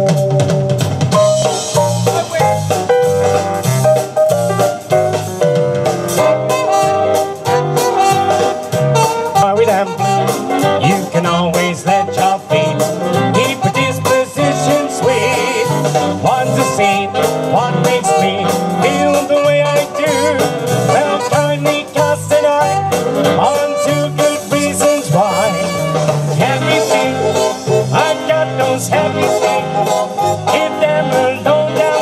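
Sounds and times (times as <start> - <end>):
backing track with bass beat: 0.0 - 32.0
man singing into microphone: 9.3 - 32.0.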